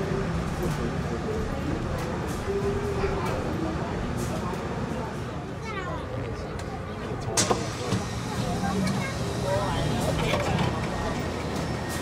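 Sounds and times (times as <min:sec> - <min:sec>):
passengers' voices: 0:00.0 - 0:12.0
train low rumble: 0:00.0 - 0:12.0.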